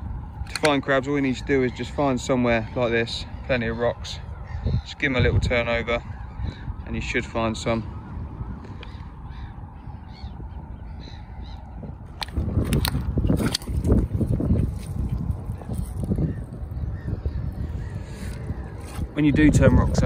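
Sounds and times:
faint bird calls: 1.2 - 12.0, 15.5 - 19.4.

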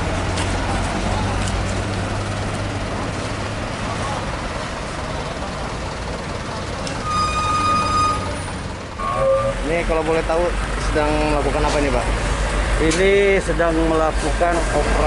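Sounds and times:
idling traffic engine hum: 0.0 - 15.0
high-pitched tone: 7.0 - 9.9.

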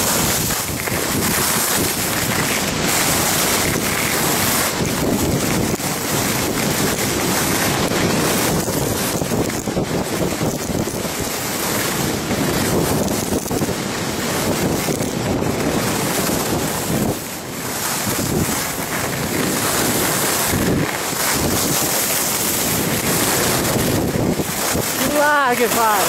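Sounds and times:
skis sliding on snow: 0.0 - 26.0
wind rushing over microphone: 0.0 - 26.0.

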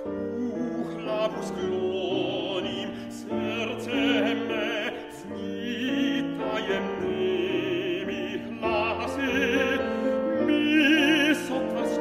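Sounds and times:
piano accompaniment: 0.0 - 12.0.

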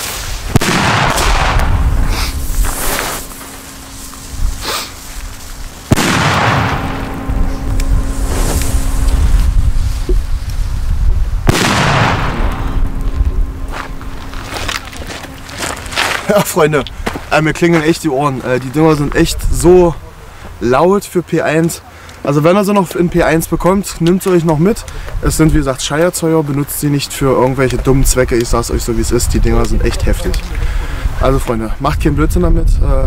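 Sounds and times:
loud firecracker bangs echoing: 0.5 - 9.6, 11.4 - 14.4.

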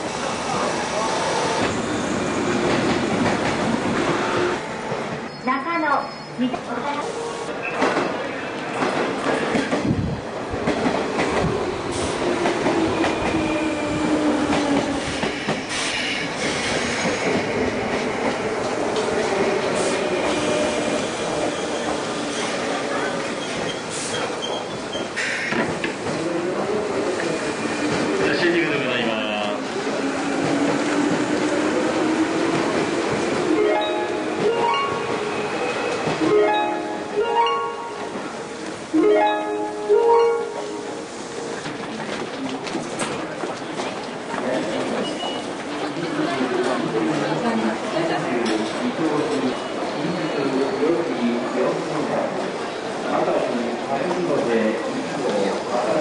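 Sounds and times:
crowd of passengers bustling: 0.0 - 56.0
short musical notes: 36.2 - 38.2, 39.0 - 41.2.

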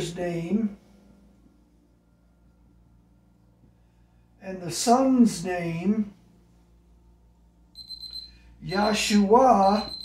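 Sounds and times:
high-pitched electronic alarm tone: 7.8 - 10.0.

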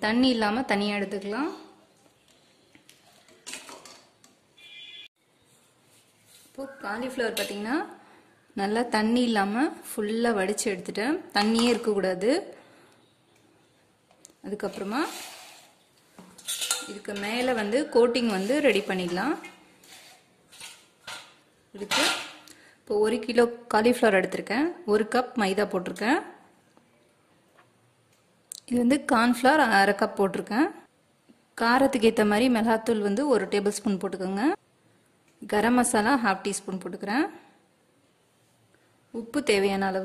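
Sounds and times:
scrape or splash: 14.7 - 15.8, 18.2 - 20.8.

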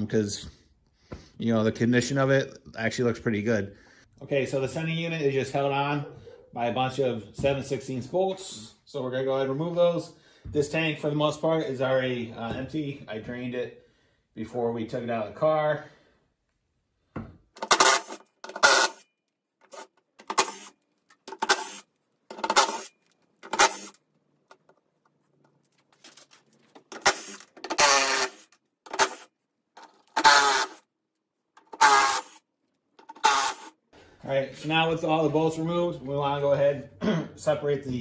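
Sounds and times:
power driver whirring: 17.6 - 19.0, 27.0 - 29.3, 30.1 - 30.8, 31.6 - 32.4, 33.0 - 33.8.

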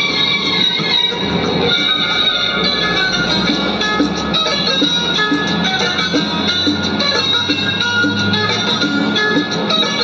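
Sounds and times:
instrumental karaoke backing track: 0.0 - 10.0.

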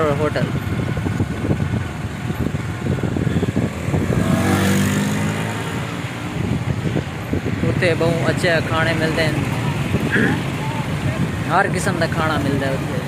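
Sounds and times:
vehicle passing by: 2.9 - 7.7.

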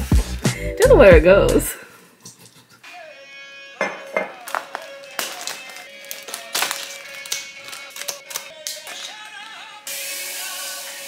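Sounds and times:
background music: 0.0 - 1.8, 2.8 - 11.0
cellophane wrapping crinkling: 4.3 - 9.6.

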